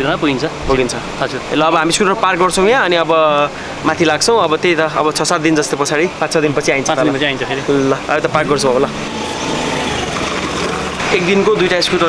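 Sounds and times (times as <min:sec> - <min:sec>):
person speaking: 0:07.0 - 0:10.1
motor scooter engine running: 0:08.3 - 0:11.3.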